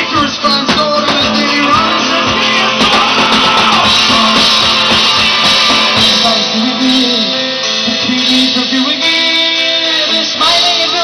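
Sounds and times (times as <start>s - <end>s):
electric guitar: 0.0s - 11.0s
drum kit hits: 0.1s - 9.4s.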